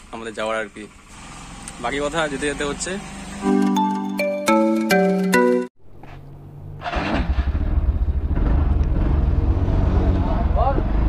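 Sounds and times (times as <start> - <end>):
scooter engine idling: 0.0 - 3.6.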